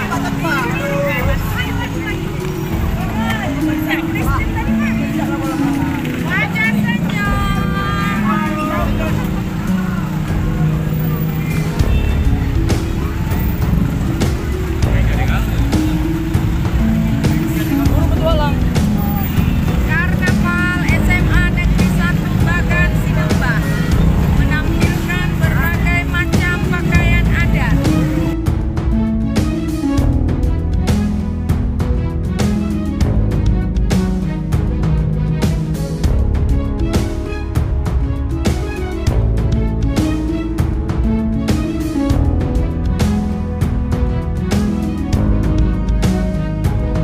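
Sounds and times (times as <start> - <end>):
voices: 0.0 - 28.3
music: 0.0 - 47.0
vehicle engines rumbling: 0.0 - 47.0.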